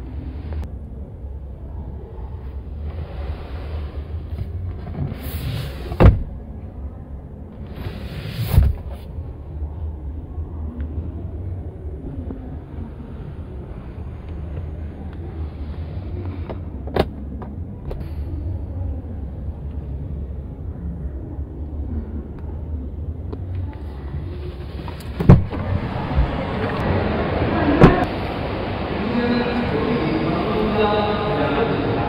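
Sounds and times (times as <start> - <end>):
distant crowd noise: 0.0 - 32.0
low hum: 0.0 - 32.0.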